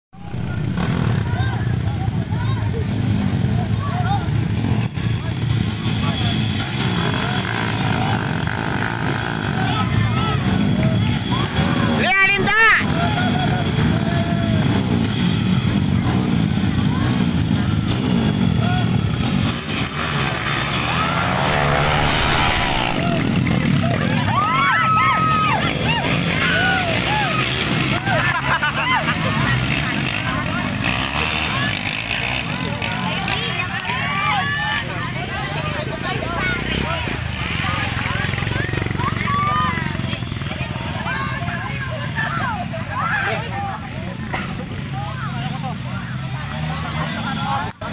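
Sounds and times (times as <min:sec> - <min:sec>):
crowd talking and shouting: 0:00.2 - 0:47.9
dirt bike engines revving: 0:00.2 - 0:47.9.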